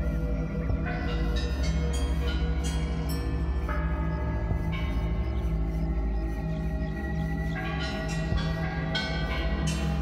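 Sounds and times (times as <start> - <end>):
low sustained drone: 0.0 - 10.0.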